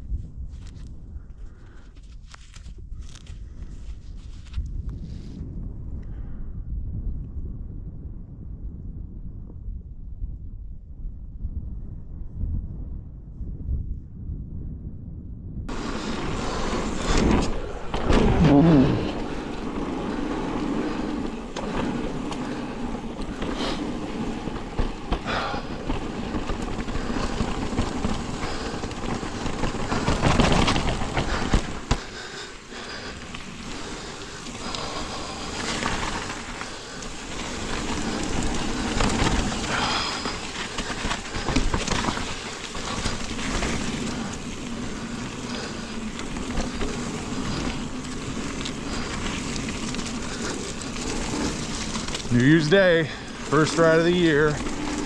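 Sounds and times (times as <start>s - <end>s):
tyre and wind noise: 0.0s - 55.0s
bike clattering over bumps: 15.7s - 55.0s.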